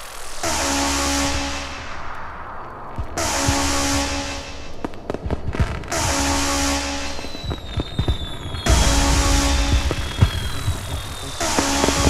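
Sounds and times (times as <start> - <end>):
sharp cracks: 2.0 - 12.0.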